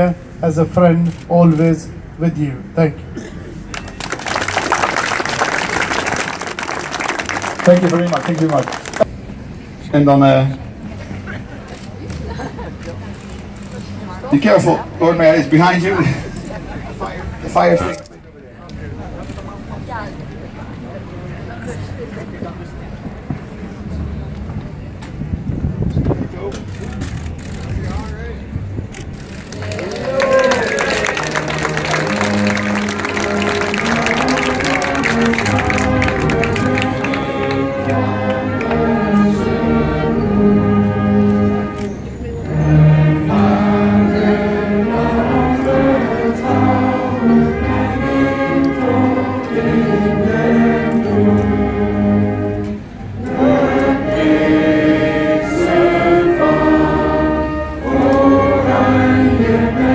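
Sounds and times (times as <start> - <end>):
applause: 3.7 - 9.1, 29.4 - 38.0
voices singing along: 30.6 - 59.9.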